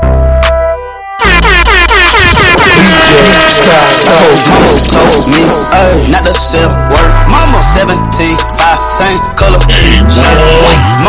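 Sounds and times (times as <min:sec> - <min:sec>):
heavy bass beat: 0:00.0 - 0:11.0
air horn blasts: 0:00.9 - 0:05.8, 0:06.7 - 0:07.9.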